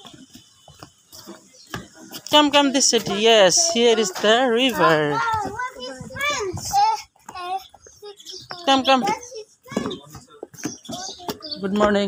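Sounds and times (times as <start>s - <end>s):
footsteps on wooden deck: 0.0s - 12.0s.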